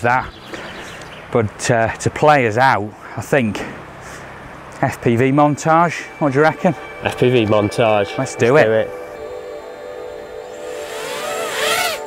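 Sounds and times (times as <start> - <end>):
drone motors whining: 9.1 - 12.0.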